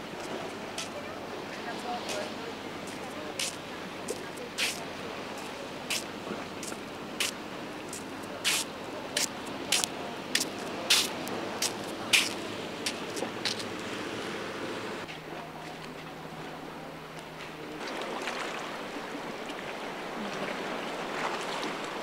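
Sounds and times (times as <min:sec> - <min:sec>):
waves splashing against wall: 0:00.0 - 0:15.0, 0:17.3 - 0:22.0
sea wash: 0:00.0 - 0:22.0
wind: 0:00.0 - 0:22.0.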